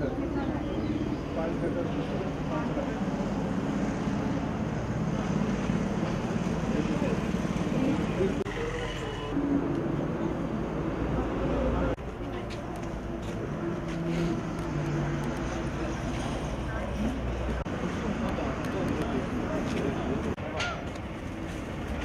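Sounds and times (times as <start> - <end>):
people talking indistinctly: 0.0 - 3.6.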